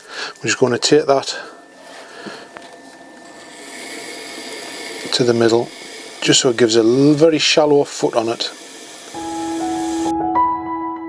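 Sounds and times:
trimming tool scraping clay: 0:01.6 - 0:10.1.

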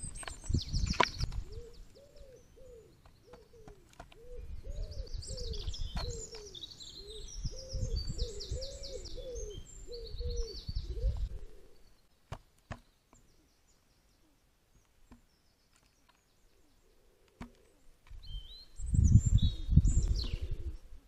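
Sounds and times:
dove cooing: 0:01.4 - 0:11.8, 0:16.6 - 0:17.9, 0:19.4 - 0:21.0.

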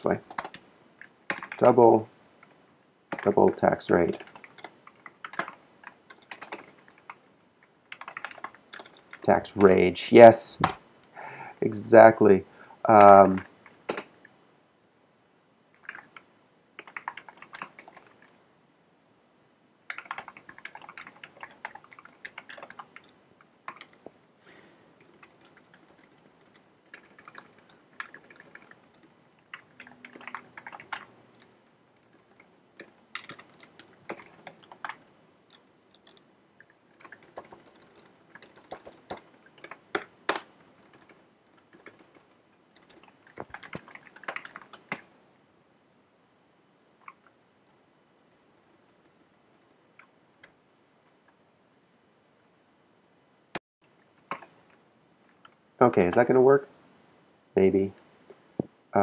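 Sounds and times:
keyboard typing: 0:00.1 - 0:01.8, 0:02.4 - 0:09.8, 0:12.9 - 0:14.2, 0:15.7 - 0:18.3, 0:19.9 - 0:24.1, 0:25.0 - 0:45.1, 0:47.0 - 0:47.4, 0:54.2 - 0:54.8.

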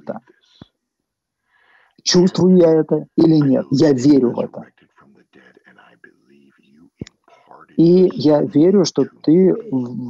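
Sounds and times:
faint man speaking: 0:00.0 - 0:00.6, 0:02.1 - 0:10.0.

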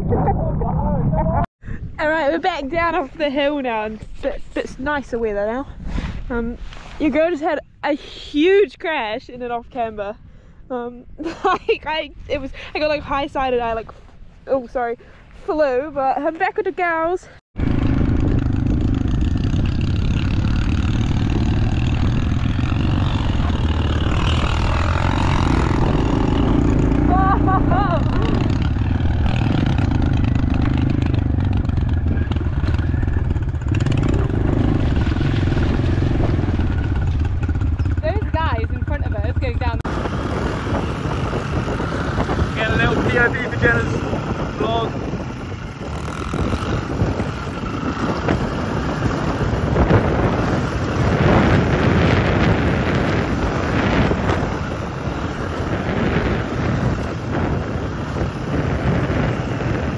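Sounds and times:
wind rumble on microphone: 0:00.0 - 0:08.2, 0:17.2 - 0:59.9
motorbike engine running: 0:17.6 - 0:59.9.

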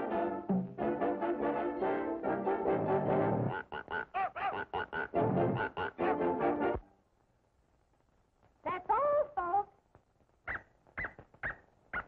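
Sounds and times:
short yelps: 0:10.5 - 0:12.0.

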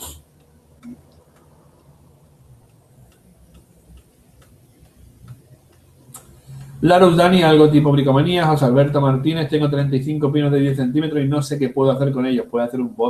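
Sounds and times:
faint irregular clicks: 0:00.2 - 0:06.8.

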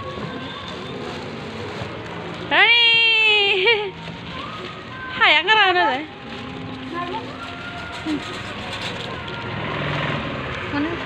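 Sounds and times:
car engine rumbling: 0:00.0 - 0:11.0.

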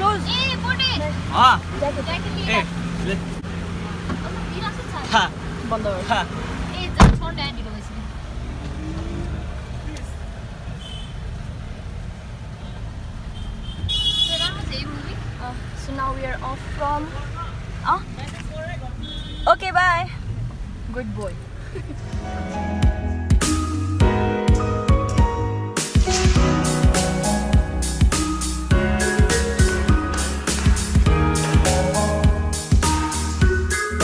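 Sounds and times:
car engine humming: 0:00.0 - 0:34.0.

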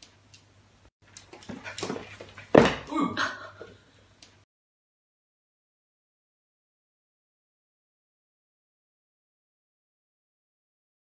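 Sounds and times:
dogs play-wrestling on wooden floor: 0:01.1 - 0:02.8.

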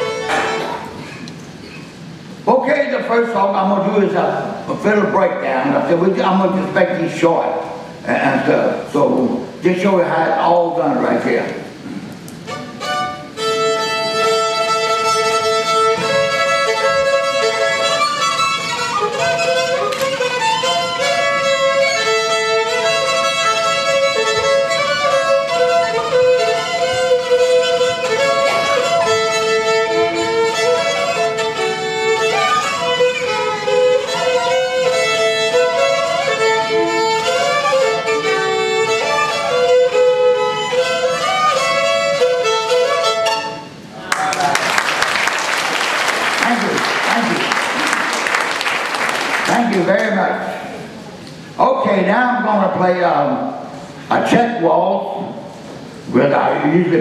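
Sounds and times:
fiddle playing brisk tune: 0:00.0 - 0:00.9, 0:12.3 - 0:43.8
audience applause: 0:44.0 - 0:50.2.

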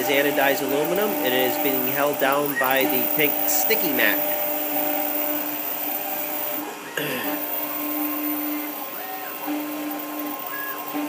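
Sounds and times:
engraving machine motor hum: 0:00.0 - 0:11.0.

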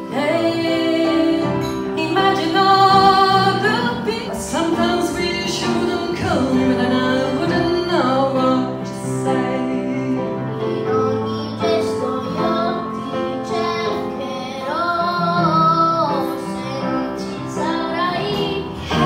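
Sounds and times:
instrumental accompaniment: 0:00.0 - 0:19.0
person singing into a microphone: 0:00.0 - 0:19.0.

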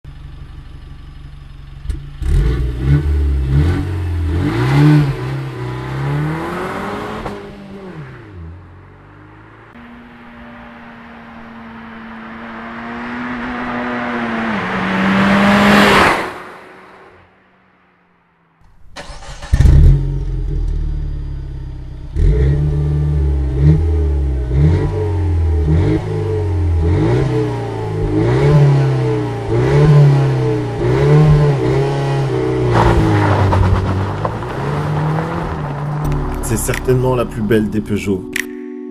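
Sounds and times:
car engine revving: 0:01.8 - 0:18.0, 0:18.7 - 0:37.9.

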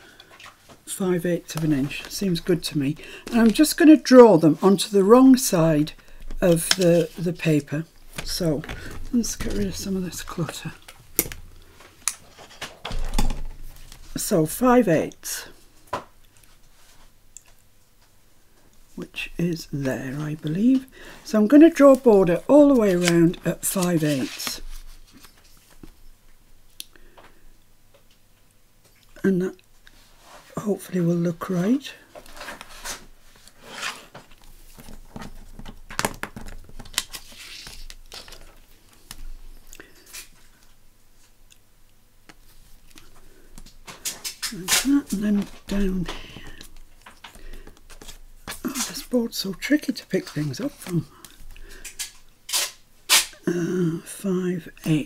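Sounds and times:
paper rustling and sliding: 0:21.8 - 0:25.8, 0:32.2 - 0:39.3.

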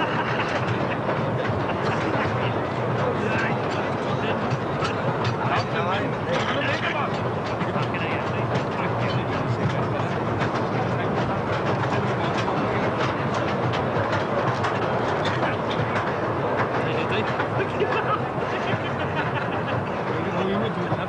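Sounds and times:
train rattling along rails: 0:00.0 - 0:21.0.

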